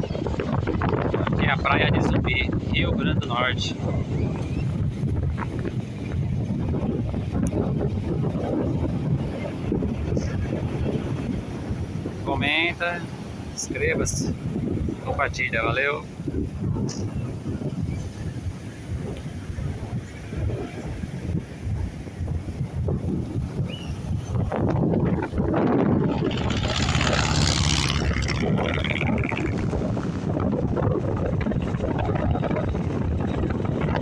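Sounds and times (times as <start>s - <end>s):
wind buffeting microphone: 0.0s - 34.0s
surf breaking on beach: 6.6s - 34.0s.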